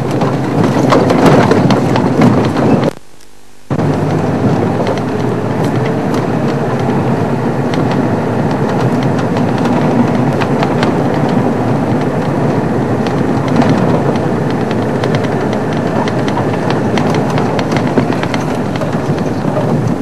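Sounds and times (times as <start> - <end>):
rattles and knocks: 0.0 - 3.0, 3.7 - 20.0
vehicle engine and road noise: 0.0 - 20.0.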